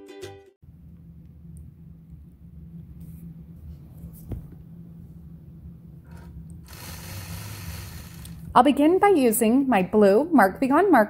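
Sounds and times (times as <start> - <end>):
quilting machine stitching: 6.1 - 8.5.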